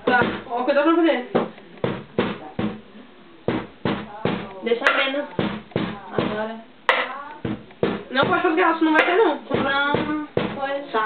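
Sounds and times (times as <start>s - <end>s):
hand percussion knocks: 3.5s - 10.7s.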